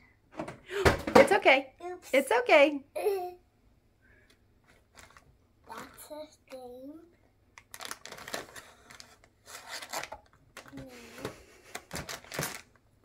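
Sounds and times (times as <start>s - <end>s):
plastic packaging crinkling: 4.8s - 6.0s, 7.6s - 10.8s, 11.7s - 12.9s.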